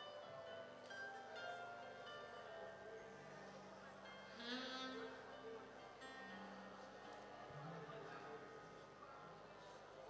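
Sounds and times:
soft worship music: 0.0 - 10.0.

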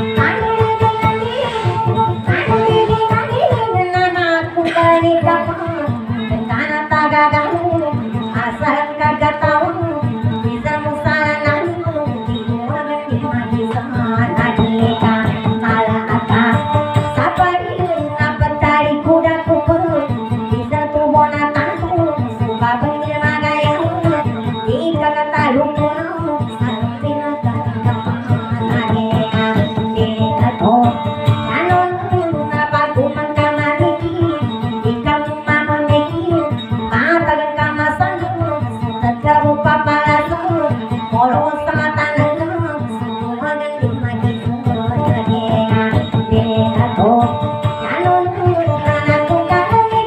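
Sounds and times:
acoustic guitar strumming: 0.0 - 50.0.

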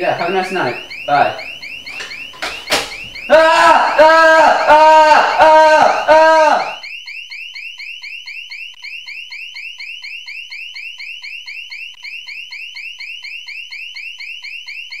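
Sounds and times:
person yelling: 3.3 - 6.8.

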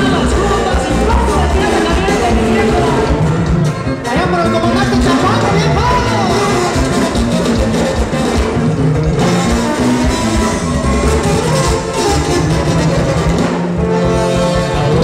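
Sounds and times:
live band dance music: 0.0 - 15.0.

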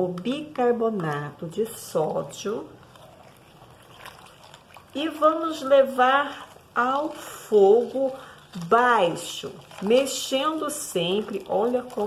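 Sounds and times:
faint wet liquid sounds: 0.0 - 12.0
spatula stirring in metal pot: 0.0 - 12.0.

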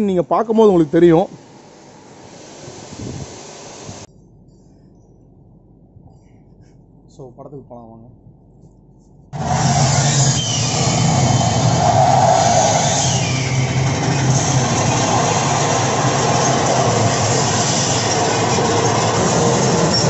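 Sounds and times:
roller coaster rumble and rattle: 9.4 - 20.0.

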